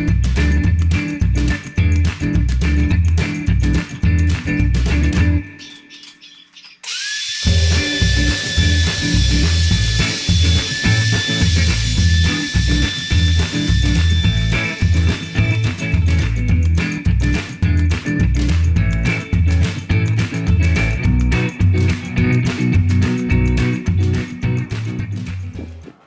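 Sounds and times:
music with bass beat: 0:00.0 - 0:05.6, 0:07.5 - 0:26.0
electric wood router whining: 0:06.8 - 0:15.8.

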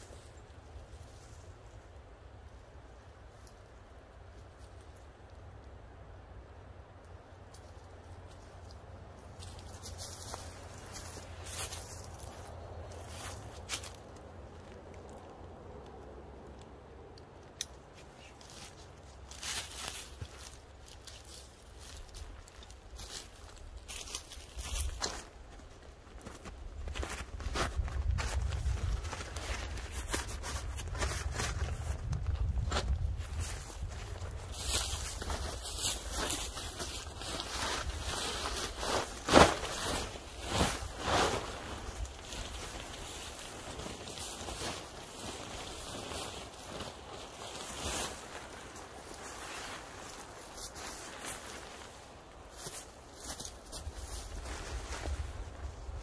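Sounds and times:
rustling fabric and straps: 0:07.5 - 0:15.3, 0:17.9 - 0:56.0.

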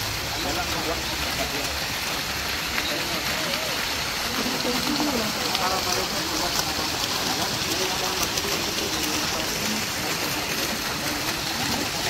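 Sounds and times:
faint voices: 0:00.0 - 0:12.0
fountain water splashing into pool: 0:00.0 - 0:12.0.

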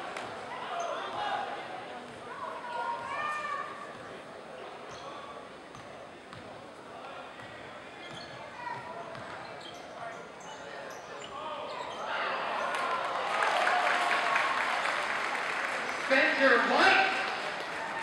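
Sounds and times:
crowd voices: 0:00.0 - 0:18.0
sneakers squeaking: 0:04.9 - 0:06.5, 0:07.4 - 0:12.8.

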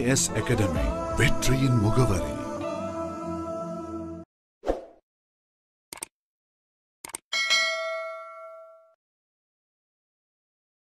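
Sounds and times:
bell-like ding: 0:07.3 - 0:09.0.

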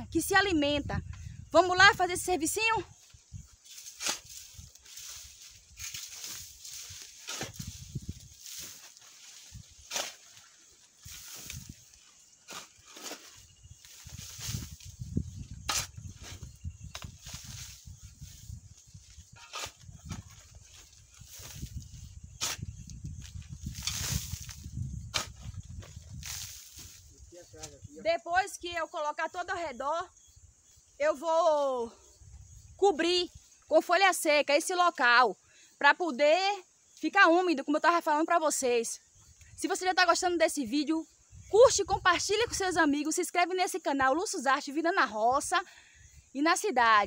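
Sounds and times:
garden tool scraping ash in wheelbarrow: 0:03.6 - 0:27.0.

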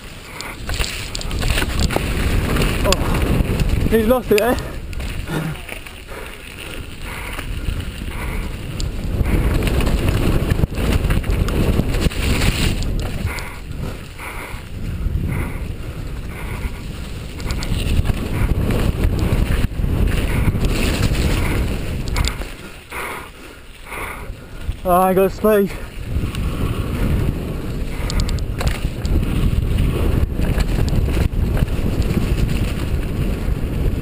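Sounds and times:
tyres through wet mud: 0:00.0 - 0:34.0
wind buffeting microphone: 0:00.0 - 0:34.0
bike clattering over rocks: 0:00.6 - 0:06.6, 0:28.2 - 0:29.2.

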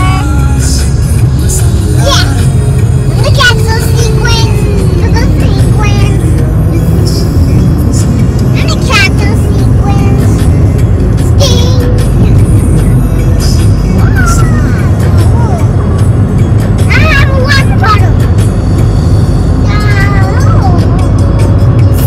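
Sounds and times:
car cabin road rumble: 0:00.0 - 0:22.0
music: 0:00.0 - 0:22.0.

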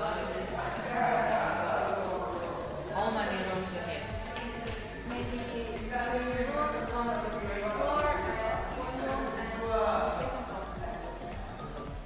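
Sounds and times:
two people talking: 0:00.0 - 0:12.0.

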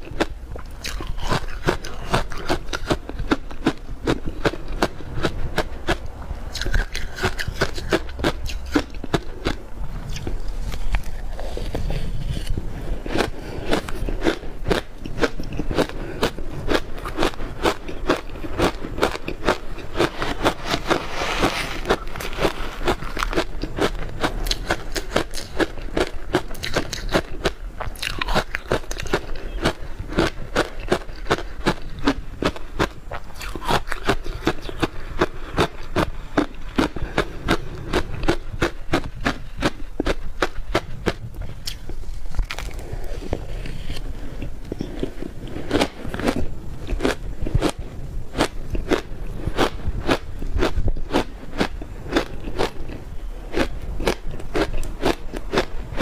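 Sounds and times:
ice crunching while chewed: 0:00.0 - 0:56.0.

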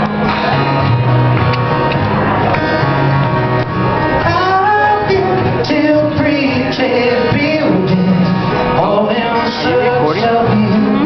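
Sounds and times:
acoustic guitar: 0:00.0 - 0:11.0
man singing: 0:04.2 - 0:11.0.

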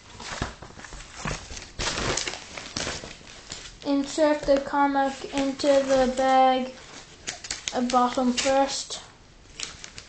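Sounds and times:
plastic bag rustling: 0:00.0 - 0:08.8.

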